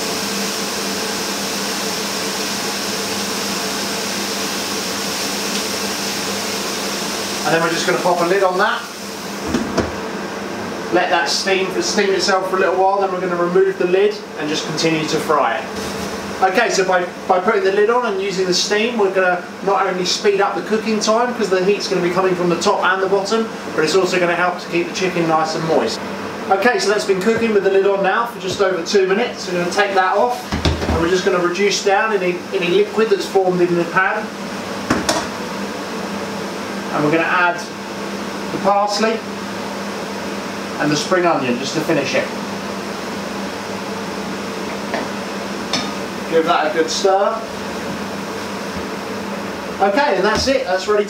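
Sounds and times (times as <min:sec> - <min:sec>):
stir-fry sizzling in a frying pan: 0:00.0 - 0:09.5
steady frying hiss: 0:00.0 - 0:51.0.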